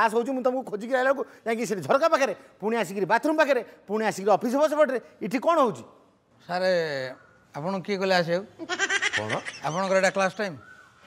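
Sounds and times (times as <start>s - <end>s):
man speaking in quavering tone: 9.2s - 10.6s.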